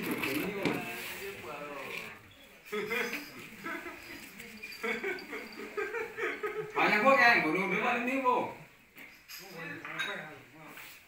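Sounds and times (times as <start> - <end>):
people talking: 0.0 - 8.6
laughter: 2.8 - 6.8.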